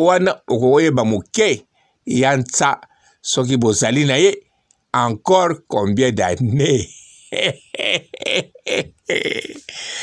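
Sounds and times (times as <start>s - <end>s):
man speaking in broken bursts: 0.0s - 4.4s, 5.0s - 10.0s.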